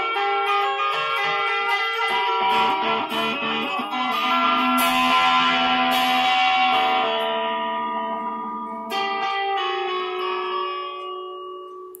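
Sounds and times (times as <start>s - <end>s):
guitar chords ringing: 0.0s - 12.0s.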